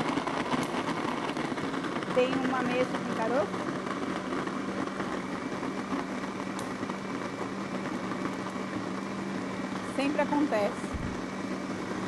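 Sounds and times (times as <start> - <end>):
electric blender running: 0.0 - 12.0.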